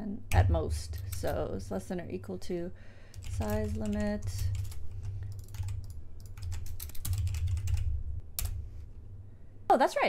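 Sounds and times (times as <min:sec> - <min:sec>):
computer keyboard typing: 0:01.0 - 0:01.5, 0:03.1 - 0:08.6.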